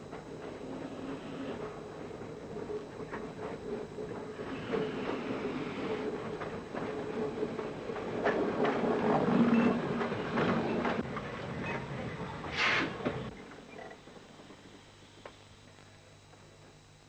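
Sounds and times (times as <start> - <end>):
steam train wheels clattering: 0.0 - 13.3.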